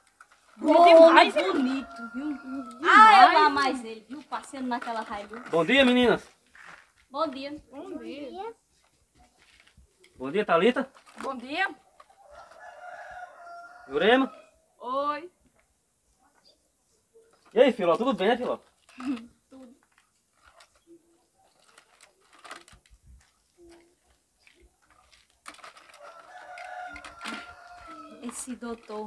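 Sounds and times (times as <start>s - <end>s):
voices: 0.5s - 6.2s, 26.6s - 29.0s
rooster crowing: 1.4s - 3.6s, 12.2s - 14.6s, 26.0s - 28.4s.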